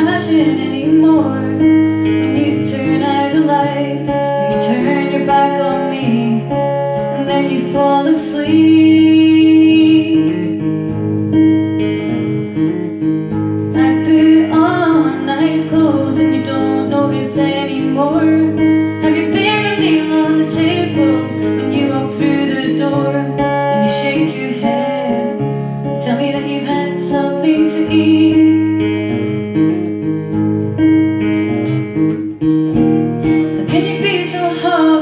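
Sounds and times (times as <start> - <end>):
woman singing: 0.0 - 11.0, 13.7 - 29.2, 33.3 - 35.0
acoustic guitar: 0.0 - 35.0.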